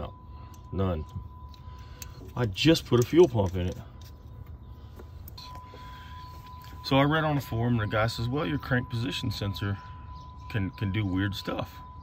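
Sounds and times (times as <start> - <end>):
high-pitched tone: 0.0 - 3.1, 5.4 - 12.0
cooling fan humming: 0.0 - 12.0.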